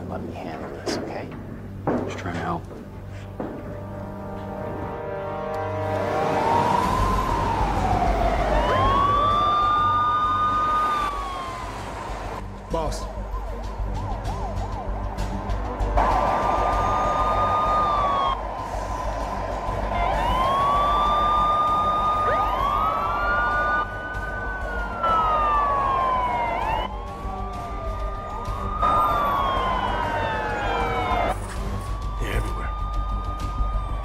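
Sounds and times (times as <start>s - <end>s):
police sirens wailing: 1.8s - 34.0s.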